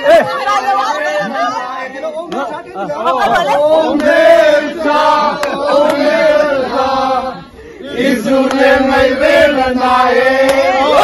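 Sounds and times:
men singing in unison: 0:03.3 - 0:11.0.

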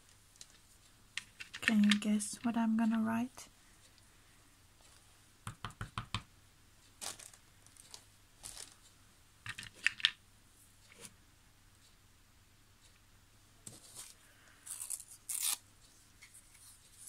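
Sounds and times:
wooden stamps knocking and clicking: 0:05.4 - 0:06.3, 0:09.4 - 0:10.2.

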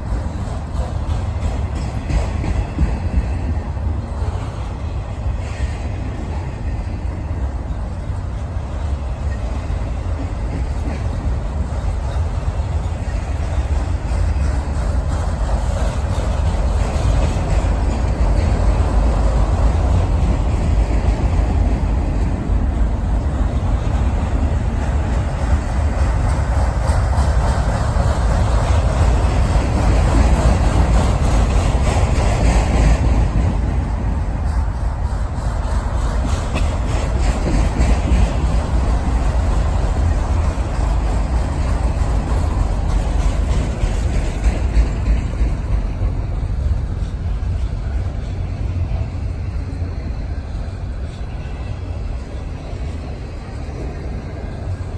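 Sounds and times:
train wheels rumbling on rails: 0:00.0 - 0:54.9
wheels clicking over rail joints: 0:00.0 - 0:54.9.

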